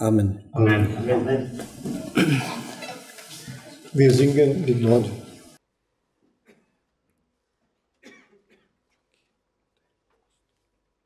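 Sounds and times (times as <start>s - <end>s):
person coughing: 2.1s - 2.8s, 8.0s - 8.8s.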